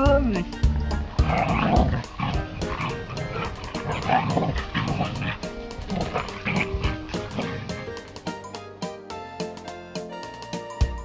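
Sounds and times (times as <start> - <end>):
husky rough vocal sounds: 0.0 - 8.1
background music with steady beat: 0.0 - 11.0.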